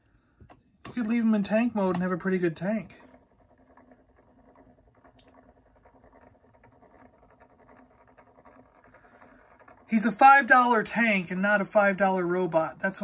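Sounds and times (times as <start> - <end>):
turntable motor hum and ticking: 0.0 - 13.0.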